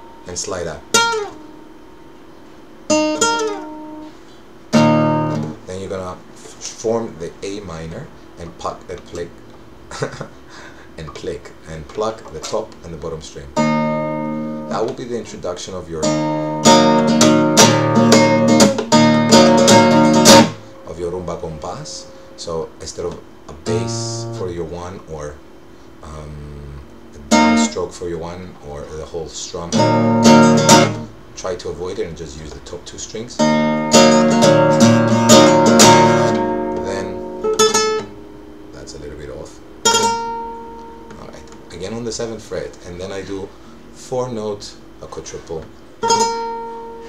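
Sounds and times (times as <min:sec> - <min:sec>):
classical guitar strummed and plucked: 0:00.0 - 0:01.7, 0:02.9 - 0:04.1, 0:04.7 - 0:05.6, 0:13.6 - 0:15.0, 0:16.0 - 0:20.7, 0:23.6 - 0:24.4, 0:27.3 - 0:27.8, 0:29.7 - 0:31.1, 0:33.4 - 0:38.6, 0:39.8 - 0:41.7, 0:46.0 - 0:47.0
classical guitar strokes: 0:16.0 - 0:24.5, 0:29.7 - 0:31.1, 0:33.4 - 0:38.3.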